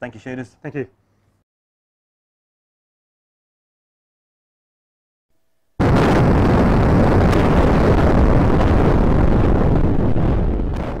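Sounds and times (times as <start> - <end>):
explosion blast and rumble: 5.8 - 11.0.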